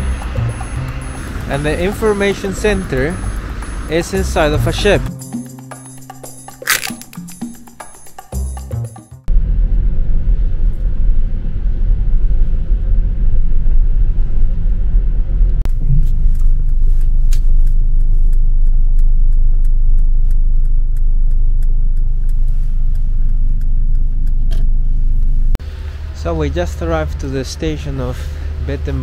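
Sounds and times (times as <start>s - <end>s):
car cabin rumble on wet road: 15.4s - 19.1s
light sharp ticks: 15.7s - 24.7s.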